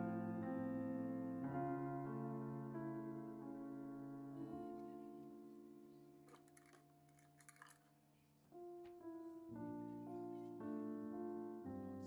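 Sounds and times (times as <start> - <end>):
faint piano music: 0.0 - 12.0
plastic measuring cups rattling: 6.3 - 7.9.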